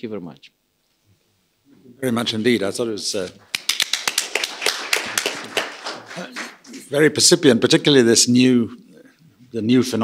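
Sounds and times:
small group clapping: 3.2 - 6.9.

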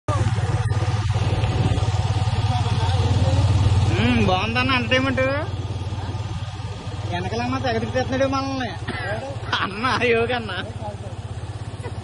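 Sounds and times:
motorcycle engine running: 0.1 - 12.0.

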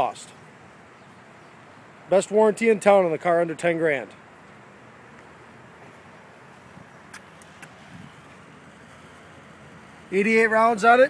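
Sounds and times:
outdoor background noise: 0.0 - 11.0
light sharp clicks: 7.0 - 7.8.

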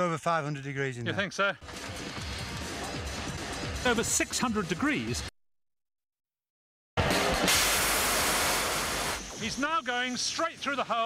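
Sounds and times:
loud high-pressure water jet hiss: 7.3 - 10.2.

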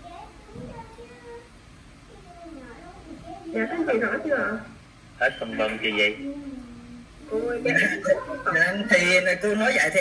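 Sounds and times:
faint distant voices: 0.0 - 10.0
main speaker talking: 5.2 - 6.3, 7.3 - 10.0.

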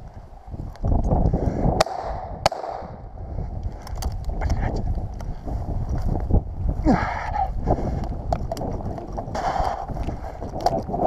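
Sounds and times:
shotgun shots: 1.8 - 3.0
dry grass rustling underfoot: 3.2 - 6.9.

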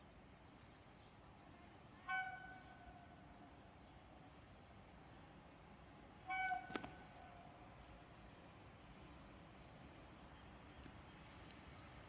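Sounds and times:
distant locomotive horn blast: 2.0 - 3.2, 6.2 - 7.5.

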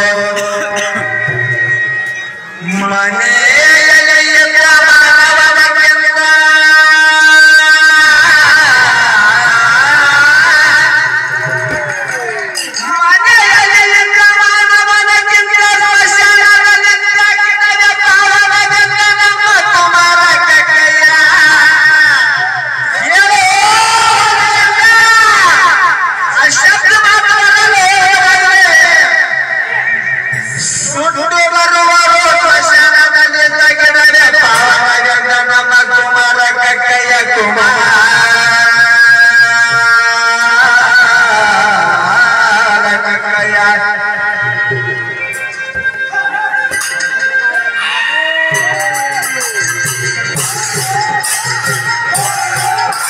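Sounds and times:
man singing devotional song: 0.0 - 1.9, 2.6 - 46.0
harmonium: 0.0 - 53.0
light percussion beat: 44.4 - 53.0.

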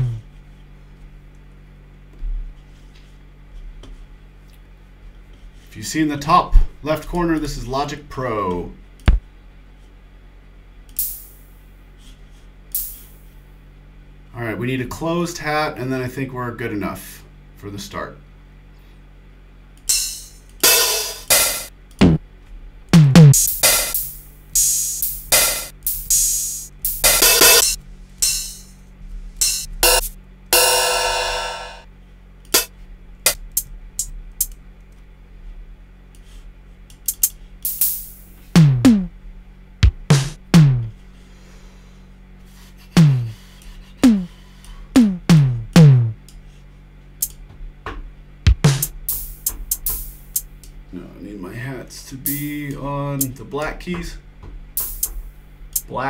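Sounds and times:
hi-hat and cymbal hits: 11.0 - 11.5, 12.7 - 13.3, 19.9 - 22.2, 23.0 - 28.8, 29.4 - 31.9, 32.5 - 32.7, 37.1 - 39.1, 39.8 - 41.0, 42.9 - 44.4, 45.0 - 46.2, 48.5 - 50.5, 52.2 - 53.4, 54.8 - 55.3
long ringing drum hit: 29.4 - 31.9
low drum hits falling in pitch: 38.6 - 39.1, 39.8 - 40.9, 43.0 - 43.4, 45.0 - 46.2, 48.5 - 49.0.

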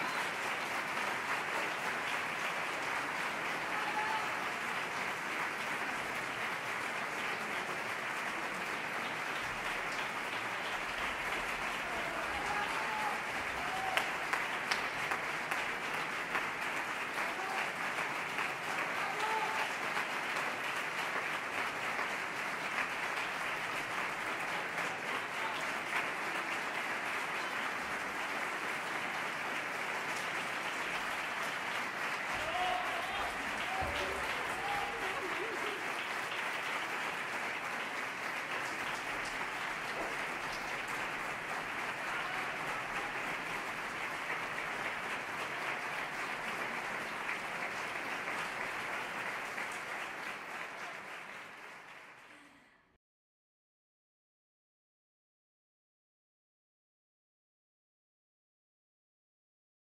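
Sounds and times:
audience applauding: 0.0 - 52.6.

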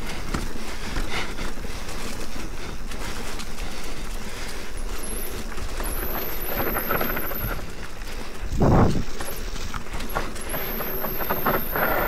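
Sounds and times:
bike clattering and rattling: 0.0 - 12.0
bike tyres rolling over dirt: 0.0 - 12.0.

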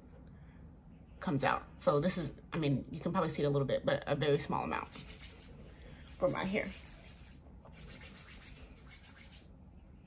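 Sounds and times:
hands rubbing through hair: 4.8 - 9.5.

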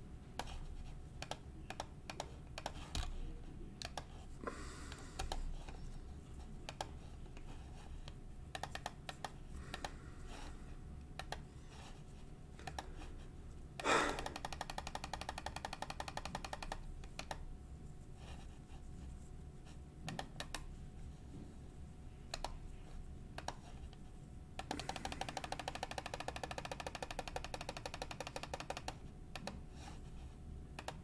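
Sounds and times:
computer keyboard clicking: 1.2 - 3.1, 3.8 - 4.1, 5.2 - 5.4, 6.7 - 6.9, 8.5 - 10.0, 11.2 - 11.4, 12.6 - 13.1, 14.1 - 17.4, 20.1 - 20.7, 22.3 - 22.6, 23.4 - 23.7, 24.6 - 29.6, 30.8 - 31.0.

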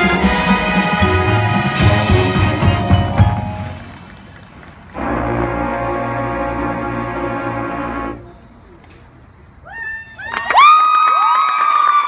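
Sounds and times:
marching band music: 0.0 - 8.6
crowd cheering and screaming: 9.7 - 12.0.

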